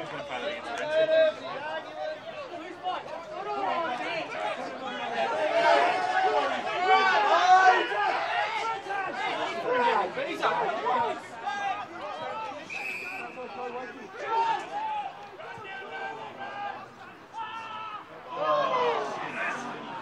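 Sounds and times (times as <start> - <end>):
voices calling and shouting: 0.0 - 20.0.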